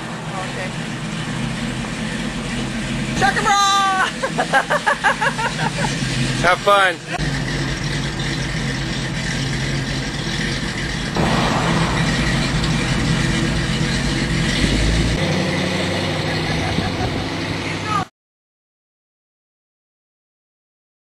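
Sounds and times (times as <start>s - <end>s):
truck engine driving off: 0.0s - 18.1s.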